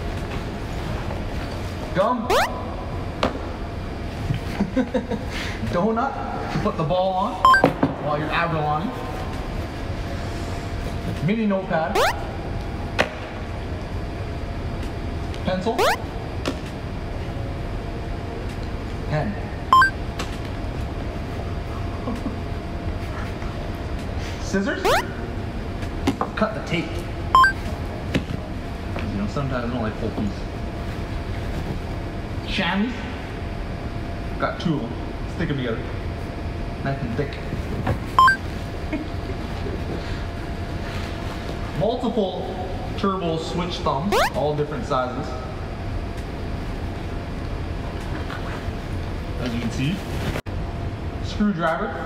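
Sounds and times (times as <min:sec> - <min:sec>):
two-note electronic beep: 0:02.3 - 0:02.6, 0:07.5 - 0:07.7, 0:12.0 - 0:12.2, 0:15.8 - 0:16.0, 0:19.8 - 0:20.0, 0:24.9 - 0:25.1, 0:27.4 - 0:27.6, 0:38.2 - 0:38.4, 0:44.1 - 0:44.4.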